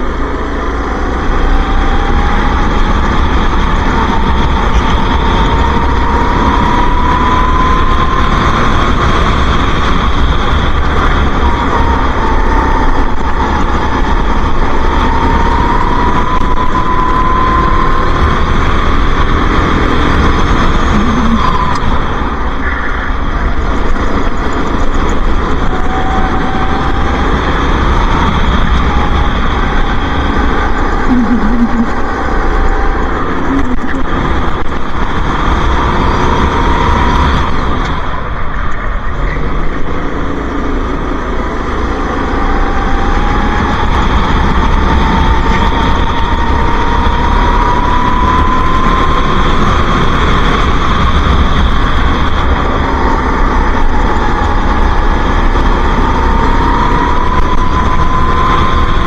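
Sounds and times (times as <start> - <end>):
go-kart engine racing: 0.0 - 59.0.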